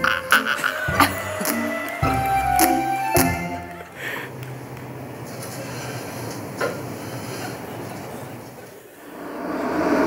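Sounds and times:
rumbling whoosh: 0:09.0 - 0:10.0.

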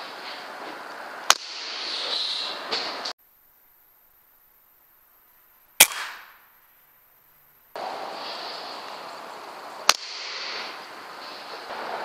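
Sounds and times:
steady hiss: 0:00.0 - 0:12.0
air rifle firing: 0:05.8 - 0:06.5.

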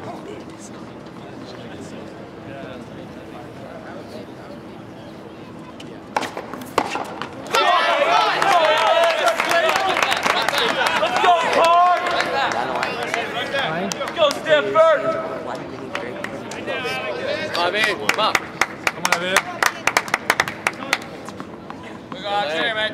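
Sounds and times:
tennis ball striking racket: 0:06.1 - 0:07.4
spectators shouting and cheering: 0:07.5 - 0:15.2.

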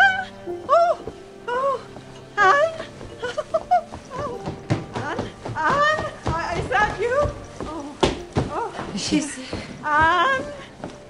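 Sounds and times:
footfalls on wooden stairs: 0:00.6 - 0:11.0.

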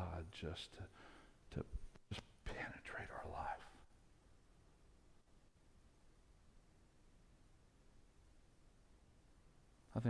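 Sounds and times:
man speaking softly: 0:00.0 - 0:00.9, 0:02.4 - 0:03.8.

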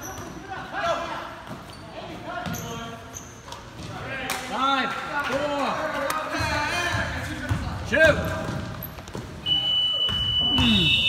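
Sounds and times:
high-pitched buzzer: 0:09.5 - 0:11.0.

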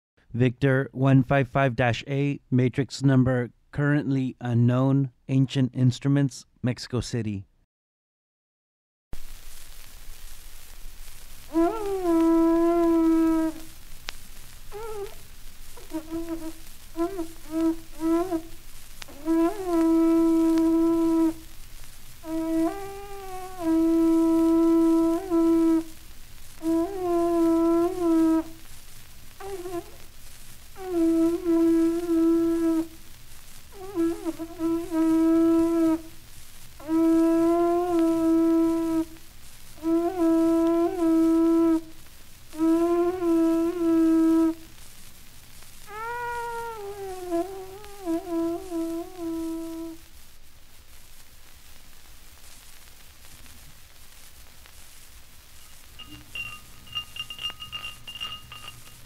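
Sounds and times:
record surface hiss: 0:00.2 - 0:07.7, 0:09.2 - 0:59.0
wind instrument held tones: 0:11.5 - 0:13.7, 0:14.7 - 0:15.2, 0:15.8 - 0:21.4, 0:22.2 - 0:26.0, 0:26.6 - 0:28.6, 0:29.4 - 0:30.0, 0:30.8 - 0:33.0, 0:33.7 - 0:36.2, 0:36.8 - 0:39.2, 0:39.8 - 0:41.9, 0:42.5 - 0:44.7, 0:45.9 - 0:50.0, 0:55.7 - 0:59.0
wind instrument long notes: 0:11.5 - 0:13.7, 0:19.1 - 0:21.4, 0:26.6 - 0:28.6, 0:30.8 - 0:32.9.

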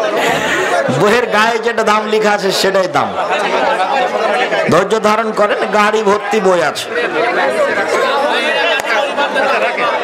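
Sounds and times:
overlapping voices chattering: 0:00.0 - 0:10.0.

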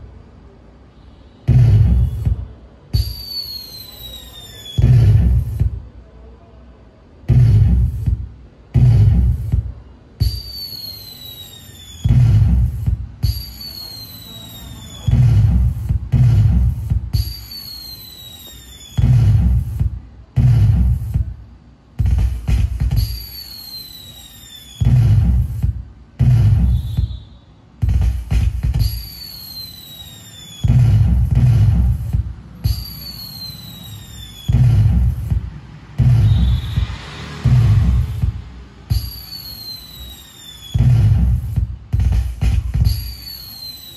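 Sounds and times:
loud boom: 0:01.5 - 0:03.2, 0:04.8 - 0:05.8, 0:07.3 - 0:10.4, 0:12.0 - 0:14.1, 0:14.7 - 0:17.4, 0:19.0 - 0:21.3, 0:24.8 - 0:28.7, 0:30.6 - 0:39.8, 0:40.6 - 0:42.8
falling whistle: 0:03.0 - 0:05.5, 0:10.2 - 0:19.6, 0:22.9 - 0:25.6, 0:26.5 - 0:27.6, 0:28.8 - 0:31.9, 0:32.6 - 0:35.4, 0:36.0 - 0:38.3, 0:38.9 - 0:41.4, 0:42.8 - 0:43.9.

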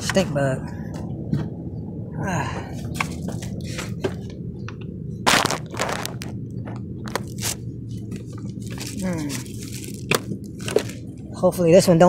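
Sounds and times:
steady low hum: 0:00.0 - 0:12.0
boots crunching on paper mat: 0:05.3 - 0:06.3.

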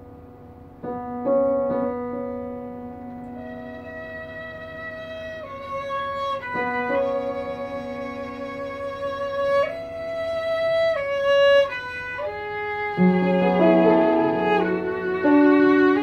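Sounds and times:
piano accompaniment: 0:00.0 - 0:16.0
violin melody: 0:03.2 - 0:16.0.

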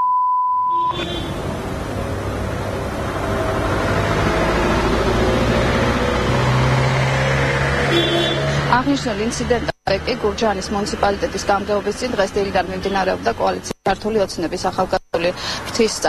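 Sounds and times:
street noise: 0:00.7 - 0:16.0.

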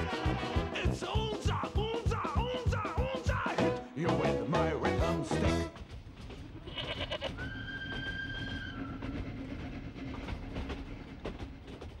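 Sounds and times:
clickety-clack over rails: 0:00.0 - 0:12.0
railway carriage rumbling: 0:00.0 - 0:12.0
goat bleating: 0:06.6 - 0:07.4.

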